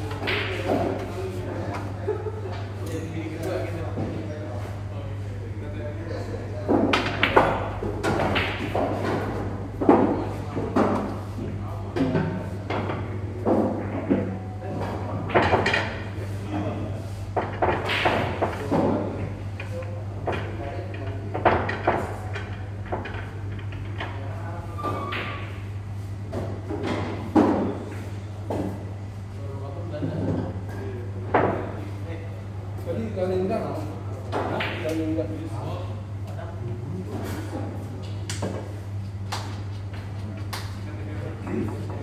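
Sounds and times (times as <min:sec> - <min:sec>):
pool balls clacking: 0:00.0 - 0:01.2, 0:06.6 - 0:16.2, 0:17.3 - 0:28.8
steady low hum: 0:00.0 - 0:42.0.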